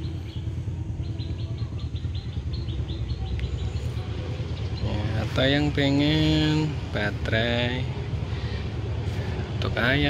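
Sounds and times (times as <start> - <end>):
bird chirping: 0.0 - 6.7
low outdoor rumble: 0.0 - 10.0.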